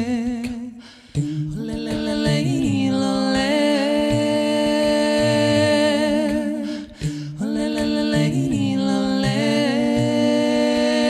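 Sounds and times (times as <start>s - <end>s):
layered a cappella woman singing: 0.0s - 11.0s.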